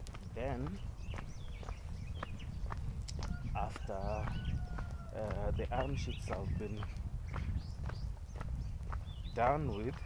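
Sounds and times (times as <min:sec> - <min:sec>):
footsteps on concrete: 0:00.0 - 0:10.0
low microphone rumble: 0:00.0 - 0:10.0.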